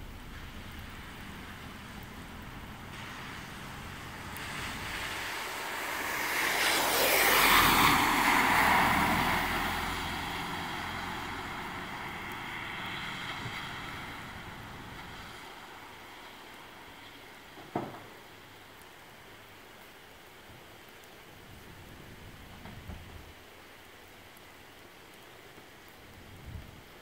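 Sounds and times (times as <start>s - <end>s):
car tyres hissing on wet road: 0.0s - 27.0s.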